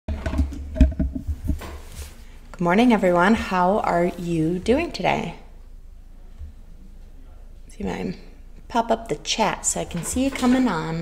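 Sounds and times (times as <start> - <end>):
low rumbling handling noise: 0.1 - 8.6.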